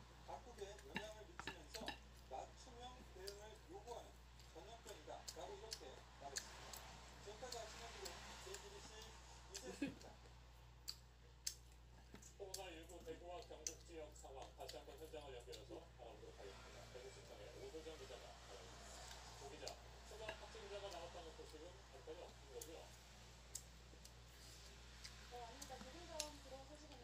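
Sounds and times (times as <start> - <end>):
low steady hum: 0.0 - 27.0
sharp clicks while eating: 0.8 - 2.3, 10.8 - 15.7, 23.5 - 24.2.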